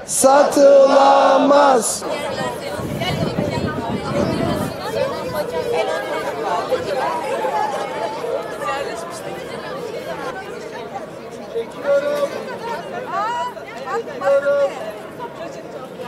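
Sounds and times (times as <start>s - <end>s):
single voices: 0.0s - 10.4s
crowd chatter: 0.0s - 16.0s.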